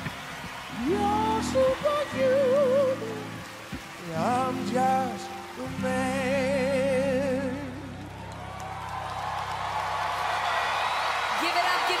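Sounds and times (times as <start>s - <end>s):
audience applause and cheering: 0.0s - 12.0s
man singing with vibrato: 0.8s - 8.1s.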